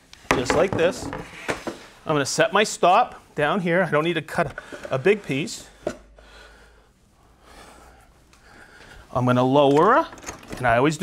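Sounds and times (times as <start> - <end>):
faint breathing: 4.6 - 9.2.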